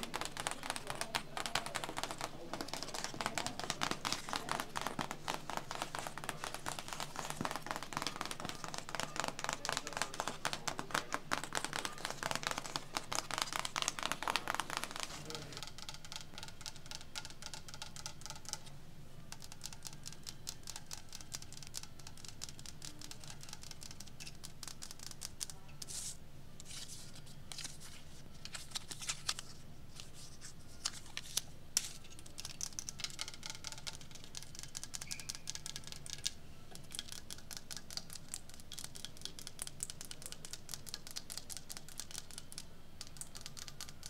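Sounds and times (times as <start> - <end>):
fingernails tapping on cardboard: 0.0 - 18.6.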